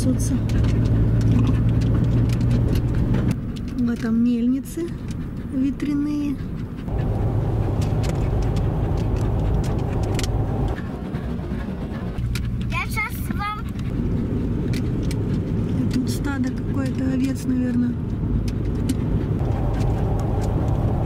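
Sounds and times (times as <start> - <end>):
road rumble inside moving car: 0.0 - 21.0.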